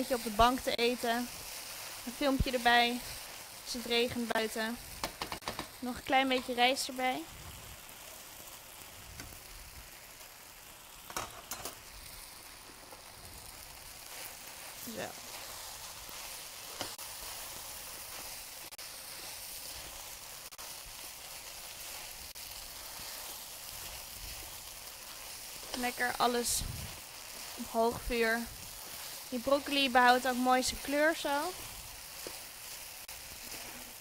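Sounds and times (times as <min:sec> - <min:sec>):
spatula stirring in wok: 0:00.0 - 0:06.7, 0:07.8 - 0:34.0
food sizzling in a wok: 0:00.0 - 0:34.0.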